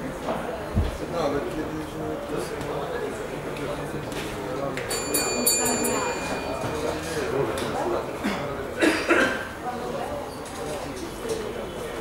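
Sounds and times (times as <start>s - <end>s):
murmured voices: 0.2s - 12.0s
boxing ring bell ringing: 4.9s - 7.4s.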